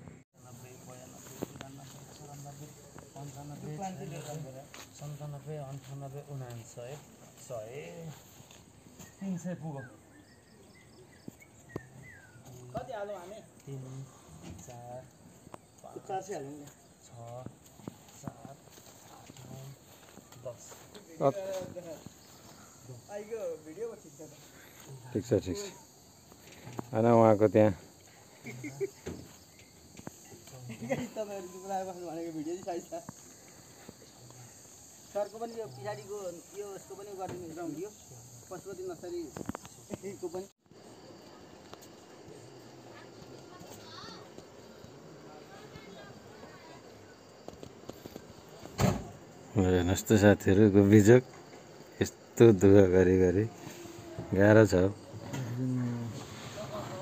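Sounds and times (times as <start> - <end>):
insect chorus: 0.0 - 57.0
people talking: 52.0 - 57.0.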